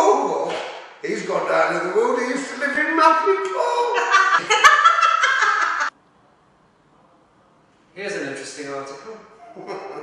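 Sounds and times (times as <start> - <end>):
woman laughing: 4.0 - 5.9.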